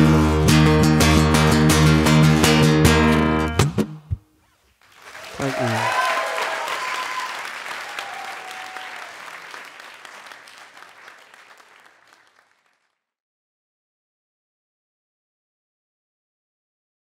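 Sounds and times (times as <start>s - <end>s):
audience applauding: 4.8s - 13.0s
audience cheering: 4.9s - 12.8s.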